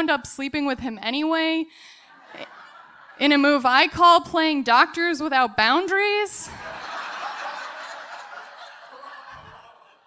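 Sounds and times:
audience laughing: 2.1s - 3.4s, 6.5s - 10.0s.

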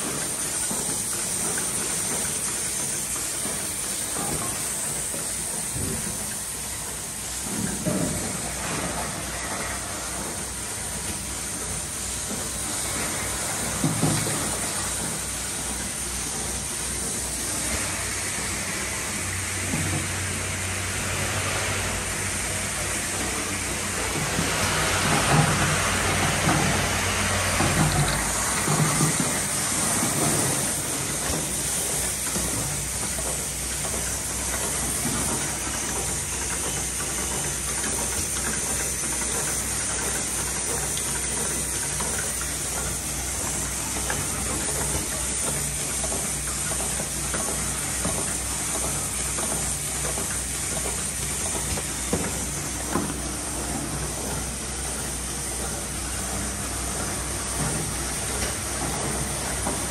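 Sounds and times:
pressing machine running: 0.0s - 59.9s
knocks and clatter: 24.1s - 59.9s.

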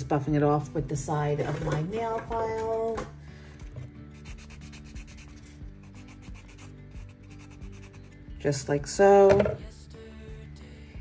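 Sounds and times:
nail file rasping: 4.2s - 8.2s.

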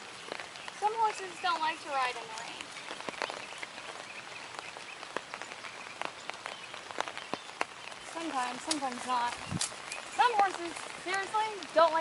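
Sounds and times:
rain falling steadily: 0.0s - 12.0s
sharp ticks of raindrops: 0.0s - 12.0s.

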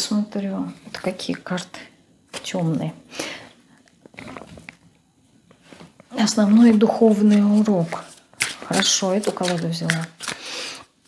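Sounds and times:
card deck rustling: 7.2s - 10.4s.

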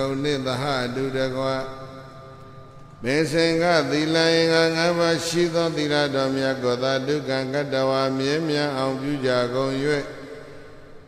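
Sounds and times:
man chanting held note: 0.0s - 2.1s, 3.0s - 10.3s.

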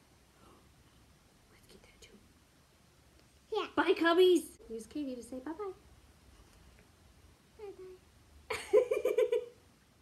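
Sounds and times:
faint whisper: 0.3s - 2.3s, 7.6s - 8.0s.

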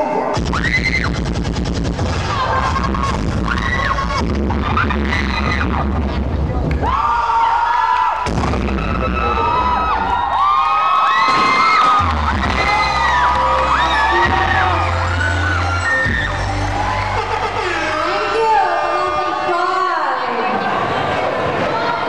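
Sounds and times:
crowd cheering and screaming: 0.0s - 1.2s, 2.1s - 6.1s, 6.7s - 22.0s
loud dance music with heavy bass: 0.0s - 6.7s, 8.2s - 10.2s, 11.8s - 19.6s.

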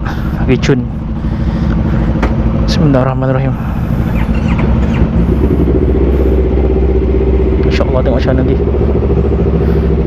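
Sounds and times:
motorcycle engines idling: 0.0s - 10.0s.

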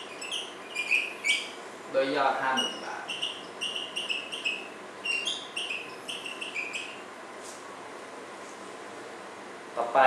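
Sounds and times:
marker squeaking on whiteboard: 0.0s - 1.6s, 2.4s - 7.1s.

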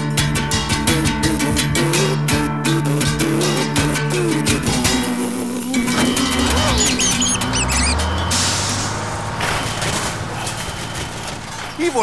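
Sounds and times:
band music with guitar and drums: 0.0s - 9.1s
squeaky warbling sound effects: 5.9s - 11.1s.

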